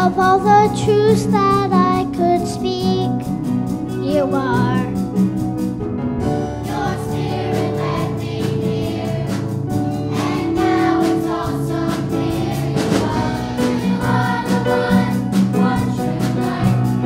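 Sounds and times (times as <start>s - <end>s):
accompaniment with steady beat: 3.0s - 17.0s
choir singing: 6.2s - 17.0s.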